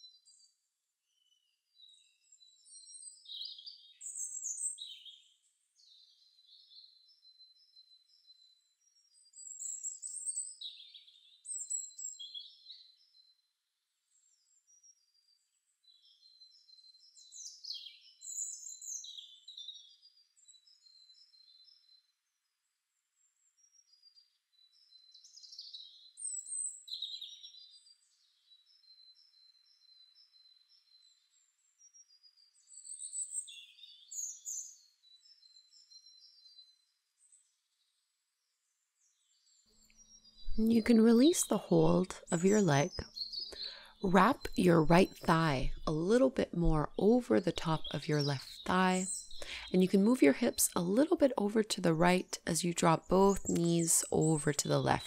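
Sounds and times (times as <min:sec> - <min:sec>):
songbirds chirping and trilling: 0:00.0 - 0:55.0.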